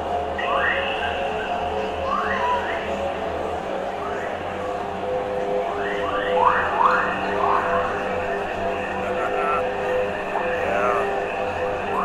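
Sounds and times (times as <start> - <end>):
low electronic drone: 0.0 - 12.0.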